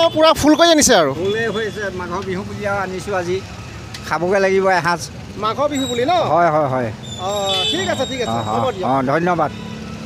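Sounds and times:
outdoor street noise: 0:00.0 - 0:10.0.

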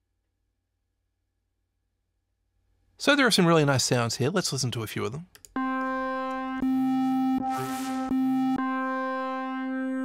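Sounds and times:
synth lead held note: 0:05.6 - 0:10.0.

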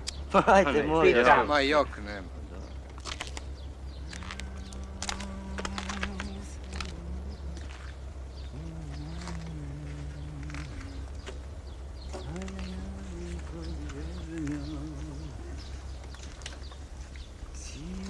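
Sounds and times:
man humming low notes: 0:03.9 - 0:11.5, 0:12.1 - 0:16.0, 0:17.5 - 0:18.0.

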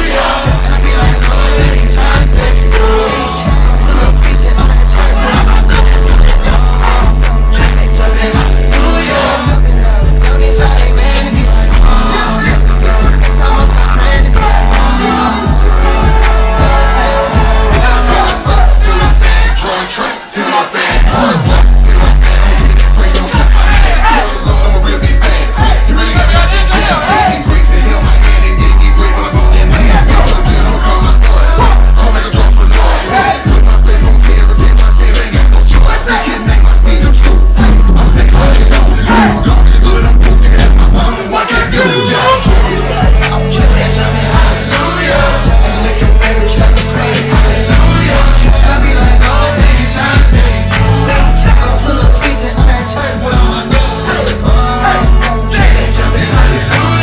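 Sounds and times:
heavy bass-driven beat: 0:00.0 - 0:20.0, 0:20.9 - 0:57.0
rapping into microphones: 0:00.0 - 0:57.0.

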